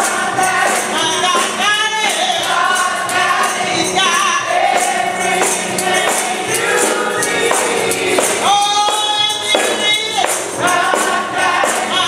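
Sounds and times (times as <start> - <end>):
backing voices singing: 0.0 - 12.0
tambourine shaken: 0.0 - 12.0
woman singing gospel lead: 0.0 - 12.0.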